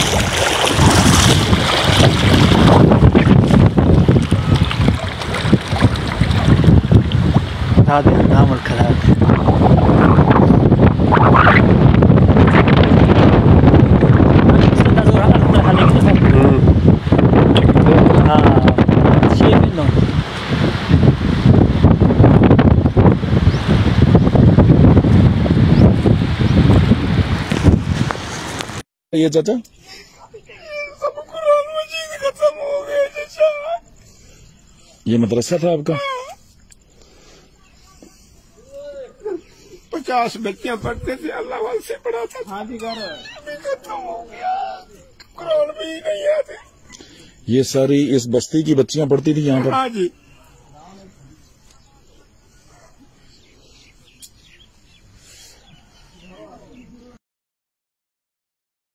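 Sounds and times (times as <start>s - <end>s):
wind buffeting microphone: 0.0s - 28.8s, 40.2s - 41.8s
faint outdoor background: 0.0s - 57.2s
old man's wavering cry: 30.4s - 33.9s, 35.5s - 36.5s, 38.6s - 39.6s, 41.0s - 46.8s.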